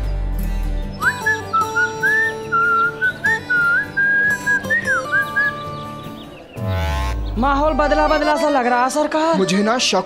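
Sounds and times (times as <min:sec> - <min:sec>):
man whistling a tune: 0:01.0 - 0:05.6.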